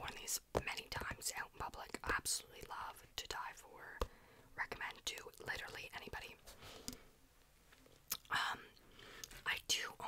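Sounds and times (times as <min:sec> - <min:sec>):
woman whispering: 0:00.0 - 0:04.0, 0:04.6 - 0:06.4, 0:08.2 - 0:08.8, 0:09.4 - 0:10.0.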